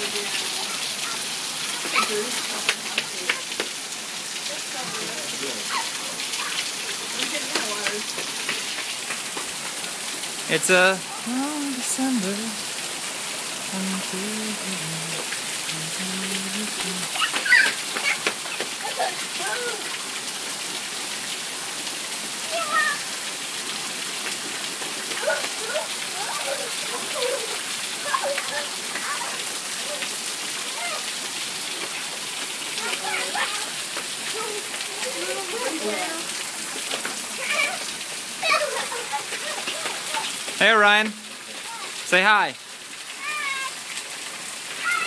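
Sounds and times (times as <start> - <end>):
voices: 0.0 - 3.7, 4.4 - 8.8, 10.4 - 12.7, 13.6 - 20.0, 25.1 - 31.2, 32.7 - 42.6
heavy rain on pavement: 0.0 - 45.0.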